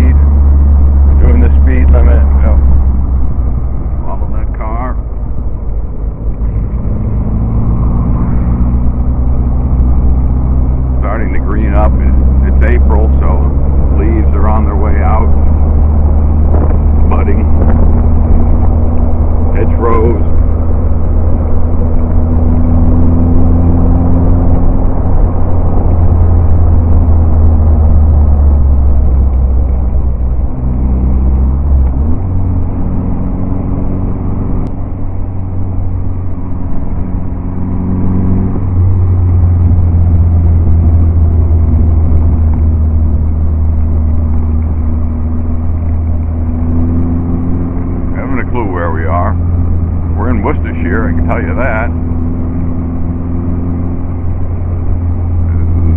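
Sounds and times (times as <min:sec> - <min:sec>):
car engine running: 0:00.0 - 0:55.9
road and wind noise: 0:00.0 - 0:55.9.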